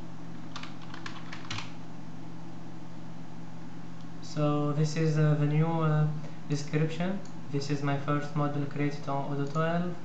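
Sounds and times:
steady low hum: 0.0 - 10.0
computer keyboard typing: 0.5 - 1.8.

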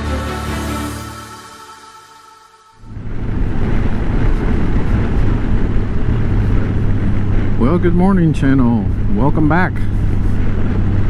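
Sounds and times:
motorcycle engine humming: 2.8 - 11.0
road and wind noise: 2.8 - 11.0.

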